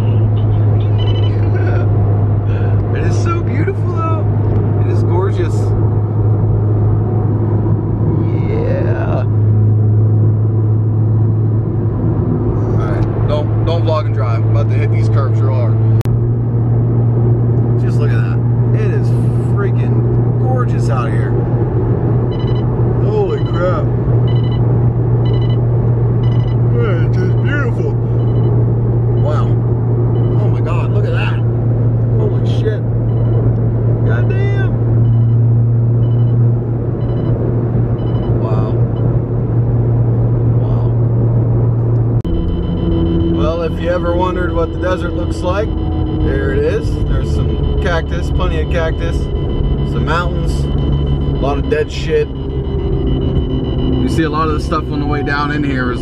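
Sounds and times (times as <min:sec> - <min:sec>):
voices: 0:00.0 - 0:01.9, 0:02.5 - 0:05.7, 0:08.1 - 0:09.3, 0:12.6 - 0:15.8, 0:17.8 - 0:21.4, 0:23.0 - 0:23.9, 0:26.6 - 0:28.2, 0:29.2 - 0:29.6, 0:30.2 - 0:31.5, 0:32.1 - 0:32.9, 0:34.0 - 0:34.8, 0:38.4 - 0:38.8, 0:40.6 - 0:41.0, 0:43.3 - 0:56.0
car cabin drone at highway speed: 0:00.0 - 0:56.0.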